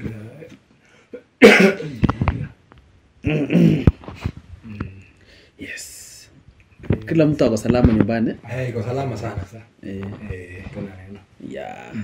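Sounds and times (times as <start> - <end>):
person coughing loudly: 1.4 - 2.0.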